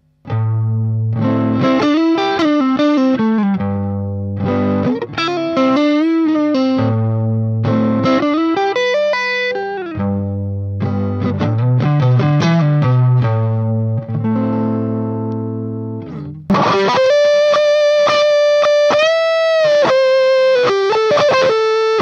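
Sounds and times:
electric guitar riff: 0.0s - 22.0s.

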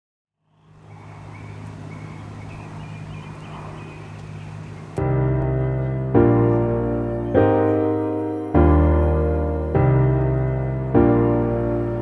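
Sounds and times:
faint bird chirps: 0.4s - 5.0s
low traffic hum: 0.4s - 12.0s.

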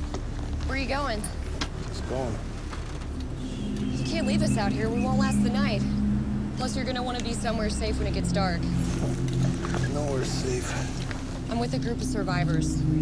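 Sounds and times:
vehicle engine idling: 0.0s - 13.0s
people talking: 0.7s - 2.4s, 3.8s - 6.0s, 6.6s - 8.7s, 9.8s - 12.9s.

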